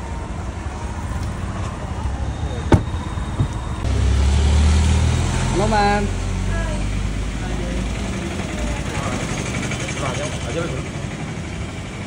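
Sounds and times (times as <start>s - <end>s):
street traffic rumble: 0.0s - 12.0s
car door slamming: 2.6s - 3.7s.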